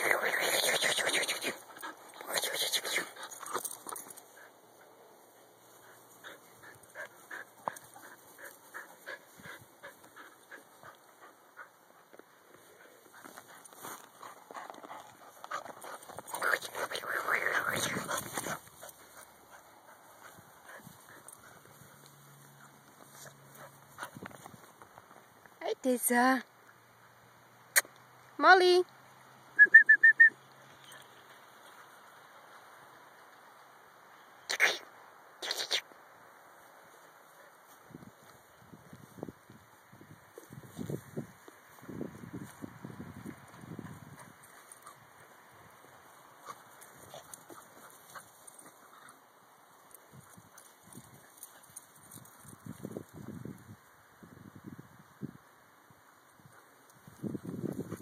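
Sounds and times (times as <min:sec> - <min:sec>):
dog panting: 0:05.7 - 0:24.2
person whistling chirps: 0:29.6 - 0:30.4.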